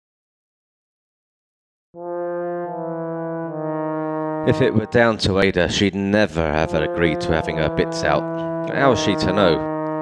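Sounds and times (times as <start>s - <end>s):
low brassy musical note: 2.0s - 10.0s.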